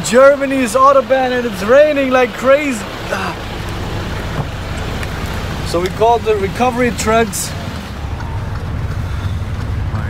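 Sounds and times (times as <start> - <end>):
heavy rain: 0.0 - 10.0
low rumble of traffic: 0.0 - 10.0.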